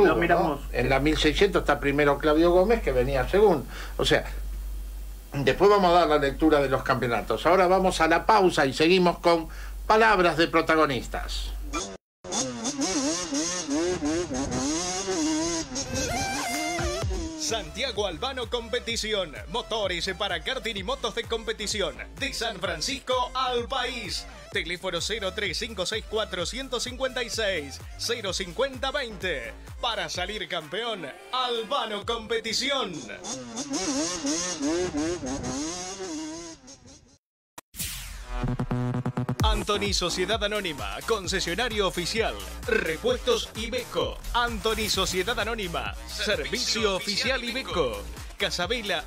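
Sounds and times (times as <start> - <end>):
music: 0.0 - 3.5, 15.9 - 32.7, 37.9 - 49.0
kart engines revving: 12.3 - 17.4, 33.2 - 37.0.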